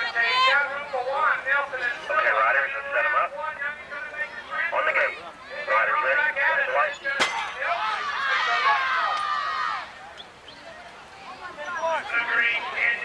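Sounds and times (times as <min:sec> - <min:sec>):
spectators shouting and cheering: 0:00.0 - 0:13.0.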